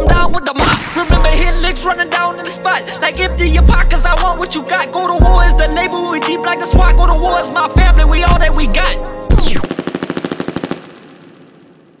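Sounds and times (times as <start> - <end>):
machine-gun burst with echo: 0.6 - 1.2, 9.4 - 12.0.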